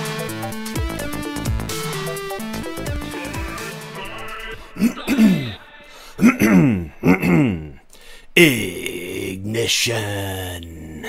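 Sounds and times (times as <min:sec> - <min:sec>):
man making wordless sounds: 0:02.9 - 0:11.0.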